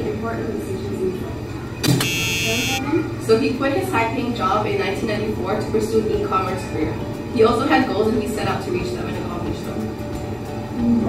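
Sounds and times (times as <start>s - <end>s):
harsh electronic buzzer: 1.8s - 2.8s.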